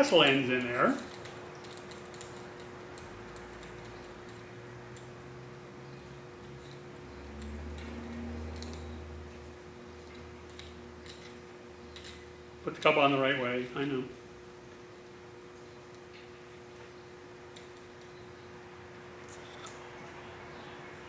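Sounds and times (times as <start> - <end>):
steady low hum: 0.0 - 21.0
light clicks of small parts: 0.2 - 5.2, 6.4 - 12.2.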